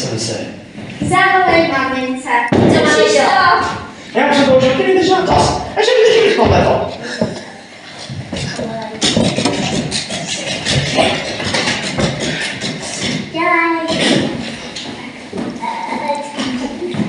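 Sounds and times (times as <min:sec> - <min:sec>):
people talking indistinctly: 0:00.0 - 0:17.0.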